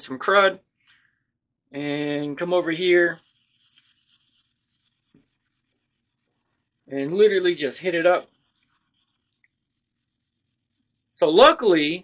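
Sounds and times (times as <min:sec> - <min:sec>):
pad scrubbing on steel: 0:03.1 - 0:07.1.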